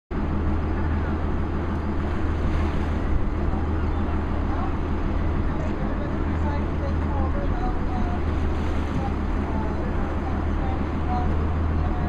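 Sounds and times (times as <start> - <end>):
boat engine droning: 0.1 - 12.0
water noise: 0.1 - 12.0
wind: 0.1 - 12.0.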